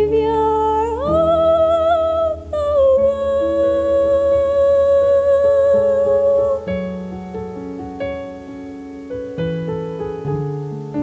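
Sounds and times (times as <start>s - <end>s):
woman singing lullaby: 0.0s - 7.0s.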